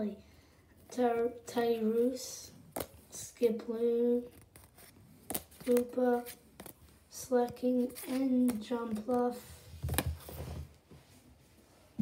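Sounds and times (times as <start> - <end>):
trading cards rustling: 4.3 - 10.4.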